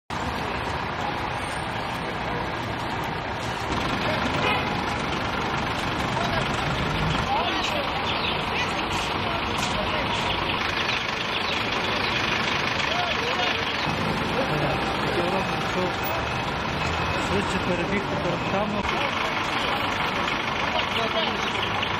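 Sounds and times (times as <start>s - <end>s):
truck engine idling: 0.1s - 21.9s
indistinct voices: 0.2s - 21.9s.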